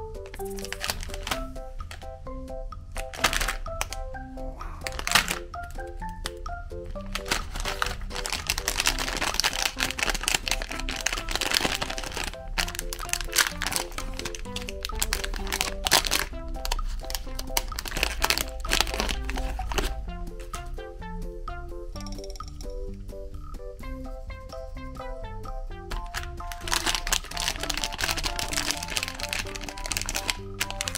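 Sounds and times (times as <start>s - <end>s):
bouncy background music: 0.0s - 30.9s
plastic wrapper crinkling: 0.2s - 2.1s, 3.0s - 4.1s, 4.8s - 6.3s, 6.9s - 20.0s, 25.9s - 30.9s.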